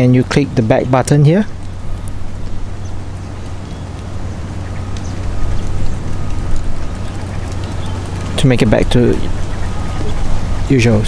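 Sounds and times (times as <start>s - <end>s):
low hum: 0.0s - 11.0s
outdoor background noise: 0.0s - 11.0s.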